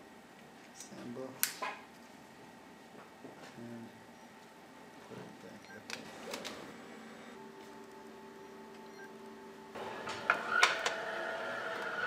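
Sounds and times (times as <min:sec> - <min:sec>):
conveyor humming: 0:00.0 - 0:12.0.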